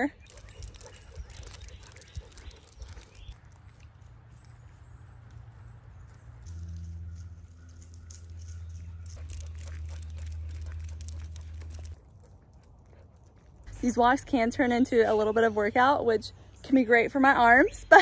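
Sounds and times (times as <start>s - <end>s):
footsteps on paved path: 0.0s - 14.4s
dog claws and tags clicking: 0.2s - 3.6s, 6.4s - 13.7s.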